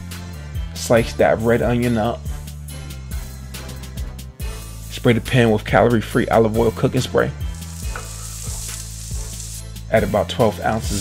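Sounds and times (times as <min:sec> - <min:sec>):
onion sizzling in a frying pan: 0:07.5 - 0:09.9
spatula stirring in a pan: 0:07.6 - 0:09.8.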